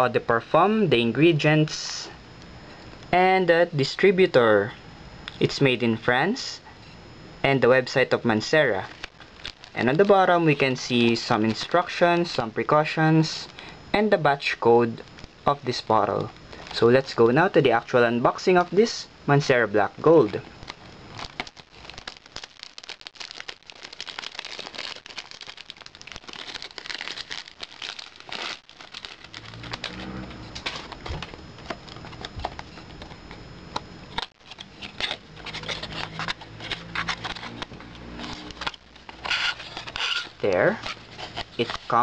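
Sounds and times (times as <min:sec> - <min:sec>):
cellophane wrap crinkling: 0:08.6 - 0:12.4, 0:20.2 - 0:33.2, 0:34.1 - 0:42.0.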